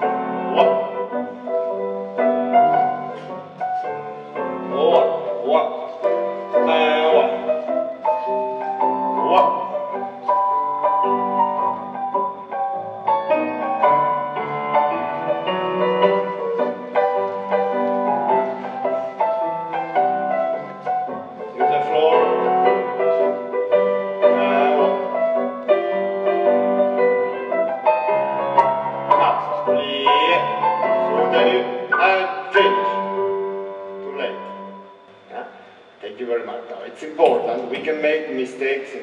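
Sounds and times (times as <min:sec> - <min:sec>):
classical piano accompaniment: 0:00.0 - 0:39.0.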